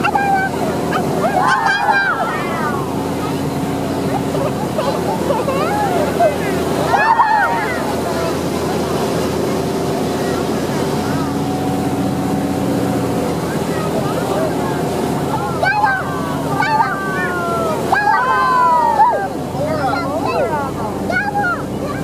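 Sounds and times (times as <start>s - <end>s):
churning wake water: 0.0s - 22.0s
motorboat engine running: 0.0s - 22.0s
voices: 0.0s - 22.0s.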